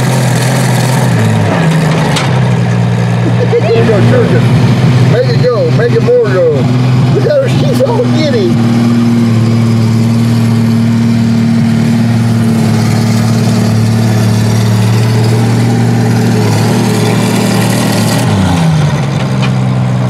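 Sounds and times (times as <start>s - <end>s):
tractor engine running: 0.0s - 20.0s.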